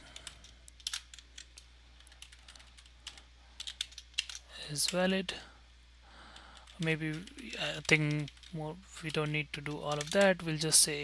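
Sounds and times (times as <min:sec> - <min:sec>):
computer keyboard keystrokes: 0:00.1 - 0:04.4, 0:09.1 - 0:10.3.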